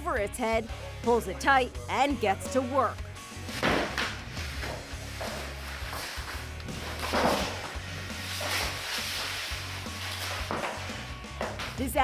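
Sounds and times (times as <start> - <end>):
background music with low bass: 0.0 - 12.0
alligator thrashing on floor: 3.5 - 11.8.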